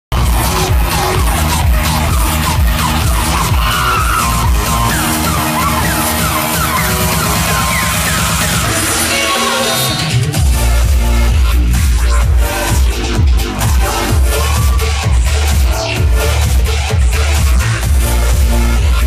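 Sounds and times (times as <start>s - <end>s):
electronic dance music: 0.1s - 19.0s.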